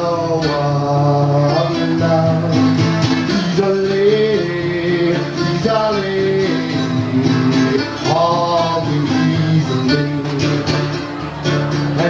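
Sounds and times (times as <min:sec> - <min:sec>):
acoustic blues guitar picking: 0:00.0 - 0:12.0
person singing: 0:00.0 - 0:12.0.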